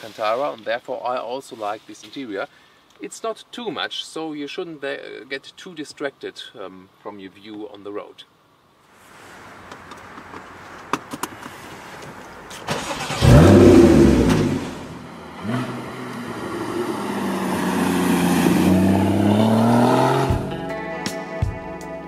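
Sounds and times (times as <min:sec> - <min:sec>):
car engine revving: 0:12.7 - 0:20.6
guitar music: 0:18.9 - 0:22.0.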